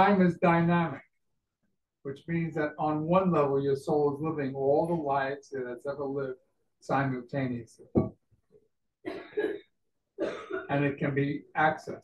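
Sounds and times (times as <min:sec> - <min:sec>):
person coughing: 0:09.1 - 0:10.8.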